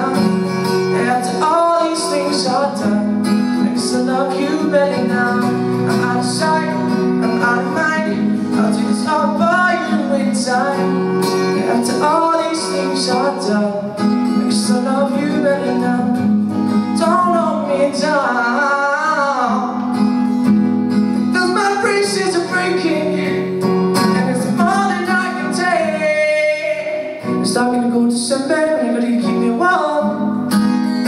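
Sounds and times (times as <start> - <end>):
man singing: 0.0 - 20.1, 21.2 - 30.7
strummed acoustic guitar: 0.0 - 31.0.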